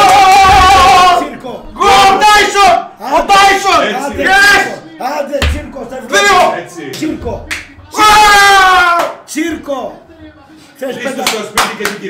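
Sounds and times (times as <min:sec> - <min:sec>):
men's excited voices: 0:00.0 - 0:10.0
sharp hand claps: 0:07.4 - 0:07.8, 0:08.9 - 0:09.2, 0:11.1 - 0:12.0.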